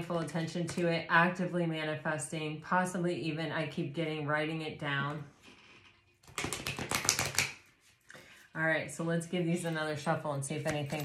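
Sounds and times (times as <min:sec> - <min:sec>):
cards being shuffled: 0:06.2 - 0:08.1.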